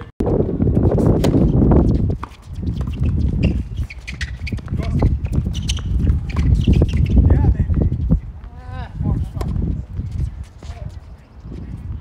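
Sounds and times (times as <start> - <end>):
shoe scuffs on hard court: 1.0 - 7.2, 9.2 - 11.8.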